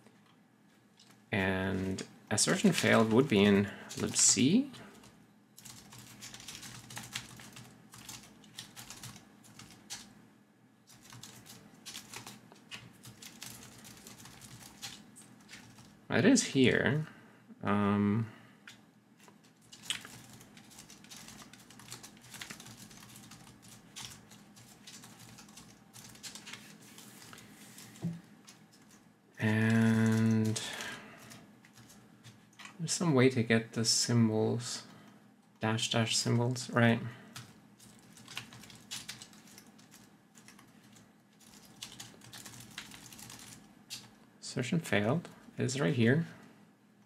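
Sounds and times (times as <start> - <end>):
computer keyboard typing: 1.8 - 10.1, 10.9 - 16.0, 19.6 - 29.0, 29.6 - 32.4, 37.3 - 44.1.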